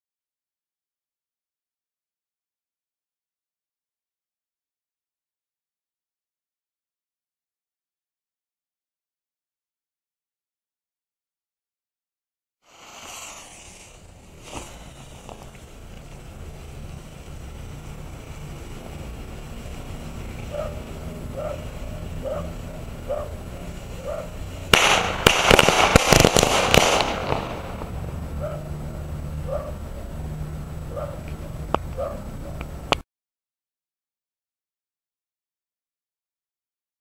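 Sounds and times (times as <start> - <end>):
firecracker sharp cracks: 12.7 - 28.8.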